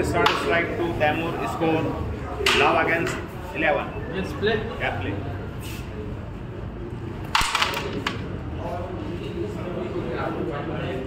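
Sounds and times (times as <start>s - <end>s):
carrom striker crack: 2.4s - 3.2s, 7.3s - 8.4s
carrom pieces clattering: 7.2s - 8.4s.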